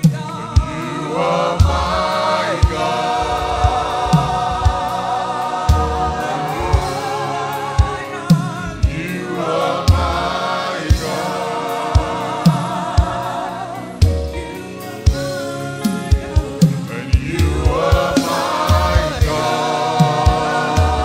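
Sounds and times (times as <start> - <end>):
choir singing worship chorus: 0.0 - 21.0
low thumps: 1.6 - 7.1.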